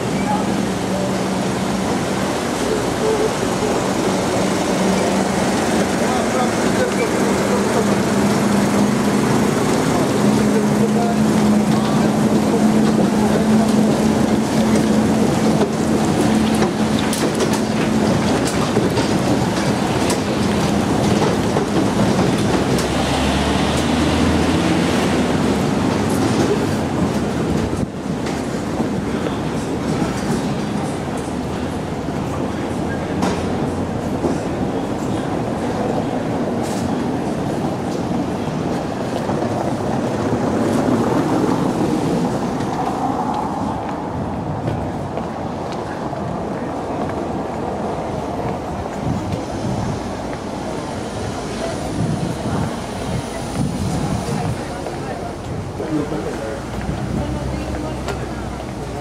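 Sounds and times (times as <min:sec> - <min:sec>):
road train rattling over cobblestones: 0:00.0 - 0:59.0.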